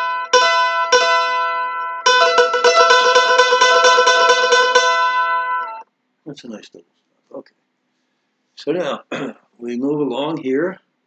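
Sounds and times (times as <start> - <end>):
mandolin tremolo picking: 0.0 - 5.8.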